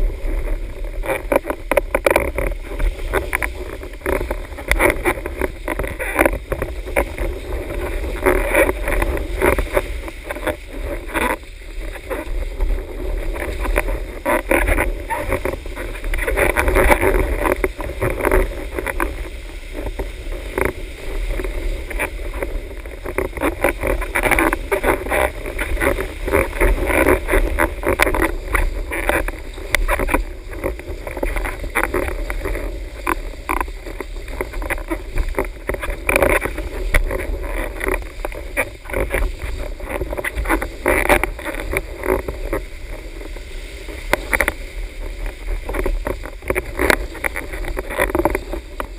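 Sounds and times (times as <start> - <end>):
water rushing under board: 0.0 - 48.9
water slapping board: 0.0 - 48.9
wind buffeting microphone: 0.0 - 48.9.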